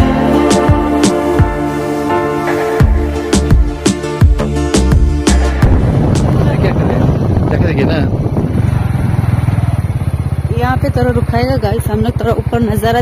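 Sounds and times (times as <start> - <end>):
beat-driven music: 0.0 - 7.0
motorcycle engine running: 0.0 - 13.0.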